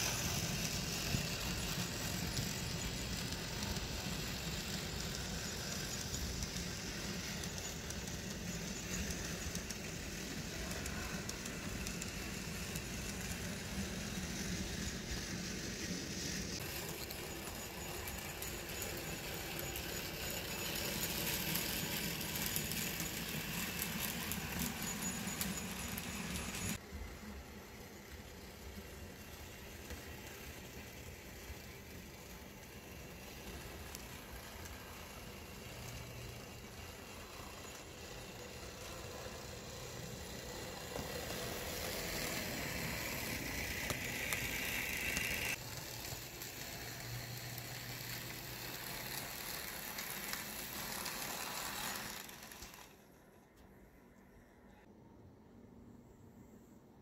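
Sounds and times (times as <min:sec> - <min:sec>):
model train whirring and rattling: 0:00.0 - 0:54.8.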